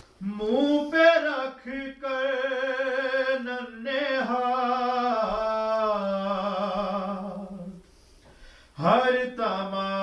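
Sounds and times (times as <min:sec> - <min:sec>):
man chanting unaccompanied: 0:08.8 - 0:10.0.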